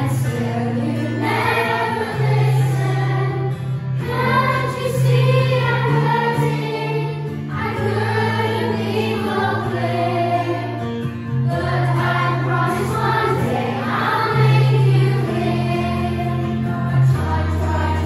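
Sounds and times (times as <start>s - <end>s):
children singing together: 0.0s - 18.0s.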